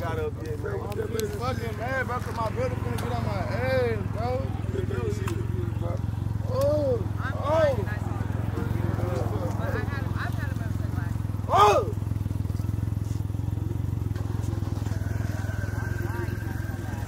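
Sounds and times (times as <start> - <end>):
motorcycle engine idling: 0.0 - 17.0
voices: 0.0 - 17.0
loud shout: 11.4 - 12.1.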